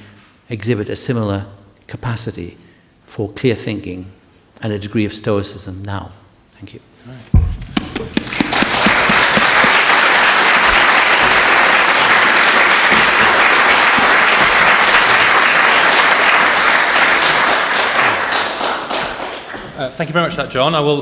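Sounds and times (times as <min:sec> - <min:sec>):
audience applauding: 0:07.8 - 0:19.7.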